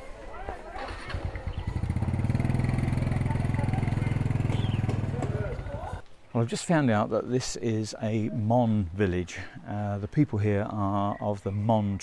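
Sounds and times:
motorcycle engine passing by: 0.7 - 6.0.

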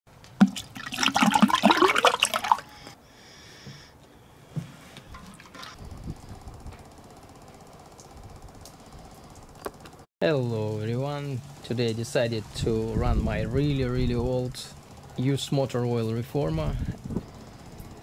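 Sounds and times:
liquid gurgling into metal drum: 0.4 - 2.7.

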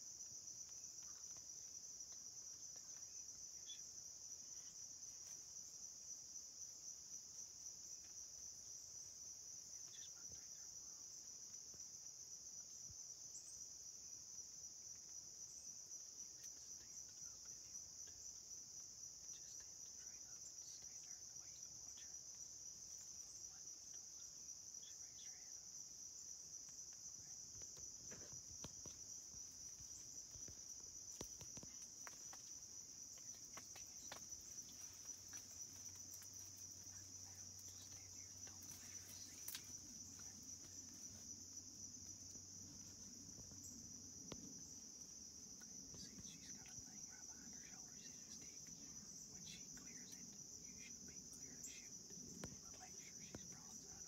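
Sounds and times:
insects chirring: 0.0 - 54.0.

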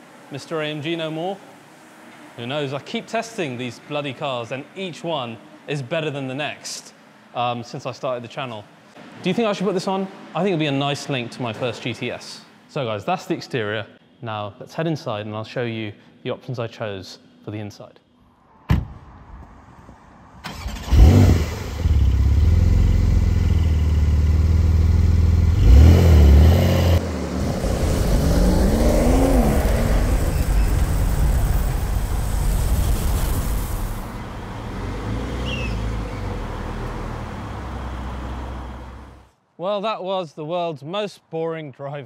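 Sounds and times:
sports car engine revving: 20.9 - 31.0.

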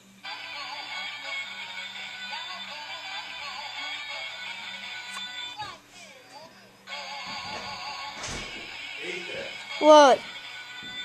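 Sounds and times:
song through tablet speaker: 0.0 - 11.0.

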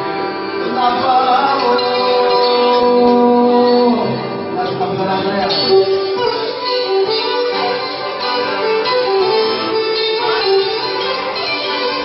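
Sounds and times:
accordion: 0.0 - 12.0
hammered dulcimer: 0.0 - 12.0
violin melody: 0.0 - 12.0.

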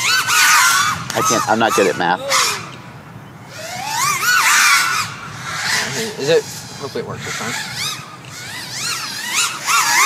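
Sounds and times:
quadcopter motors whining: 0.0 - 10.0.

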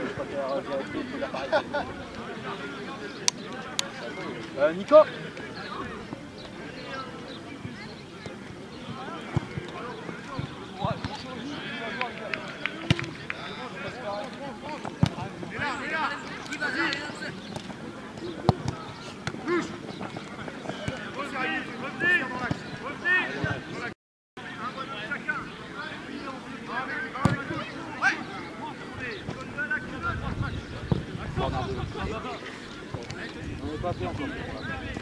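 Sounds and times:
players calling out: 0.0 - 35.0.

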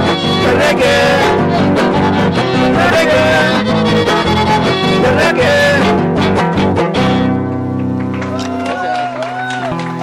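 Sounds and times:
violin melody: 0.0 - 7.4
strummed guitars: 0.0 - 8.6.

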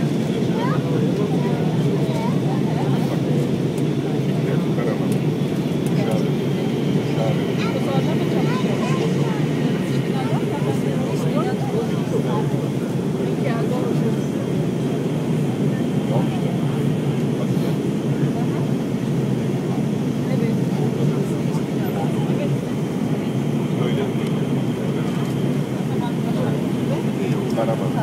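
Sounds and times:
aircraft engine and airflow rumble: 0.0 - 28.0
faint voices: 0.0 - 28.0.

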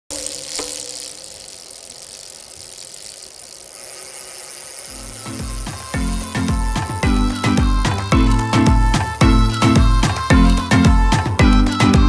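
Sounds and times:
hissing noise: 0.1 - 11.4
intro music with deep bass: 5.0 - 12.0.

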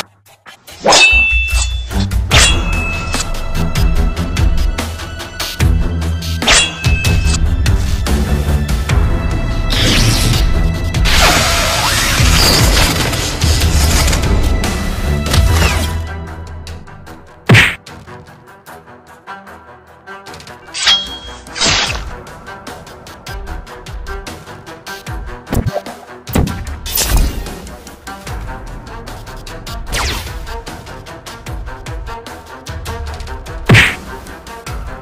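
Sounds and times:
background music: 0.0 - 35.0
metallic hammer clang ringing: 0.9 - 3.2, 20.8 - 21.5
low bass music: 1.4 - 11.2
loud whack sound effect: 33.7 - 34.0.

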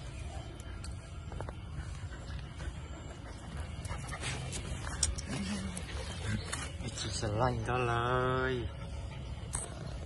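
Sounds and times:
dogs growling: 0.4 - 6.7.

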